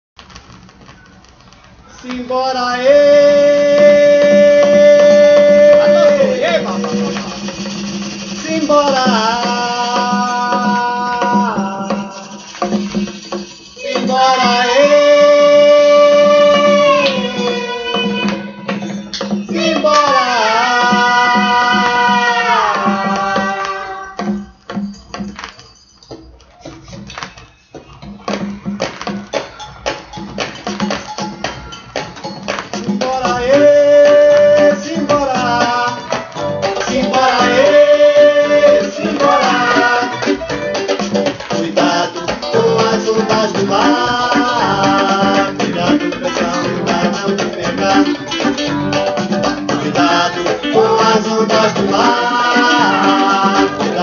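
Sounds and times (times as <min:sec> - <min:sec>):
vinyl crackles and clicks: 0:00.2 - 0:03.2, 0:03.8 - 0:10.2, 0:11.0 - 0:13.8, 0:23.1 - 0:54.0
drum strokes: 0:00.2 - 0:54.0
record surface hiss: 0:00.2 - 0:54.0
sharp rattling hits: 0:06.6 - 0:09.6.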